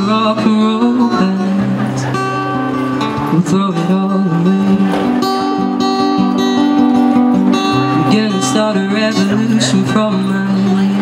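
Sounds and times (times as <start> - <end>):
young man singing: 0.0 - 6.4, 7.5 - 11.0
acoustic guitar strumming: 0.0 - 11.0.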